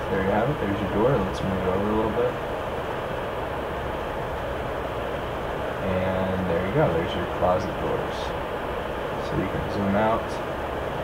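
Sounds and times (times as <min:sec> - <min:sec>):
even hiss: 0:04.6 - 0:11.0.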